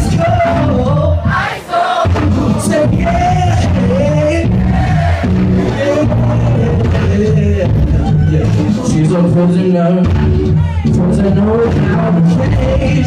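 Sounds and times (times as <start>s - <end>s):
live band playing: 0.0s - 13.0s
wordless sung vocal: 0.0s - 13.0s.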